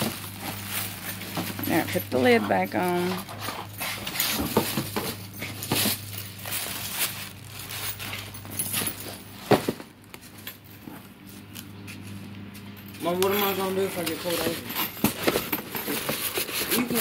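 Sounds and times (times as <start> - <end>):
cardboard boxes being handled: 0.0 - 9.9, 14.2 - 17.0
plastic wrapping crinkling: 0.0 - 10.4.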